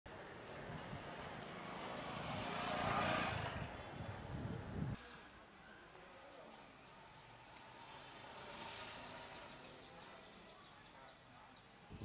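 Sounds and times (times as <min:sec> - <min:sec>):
street traffic: 0:00.1 - 0:12.0
vehicle passing close by: 0:00.8 - 0:05.0.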